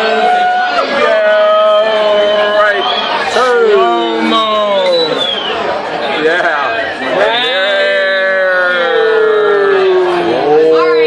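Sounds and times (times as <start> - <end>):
crowd chatter: 0.0 - 11.0.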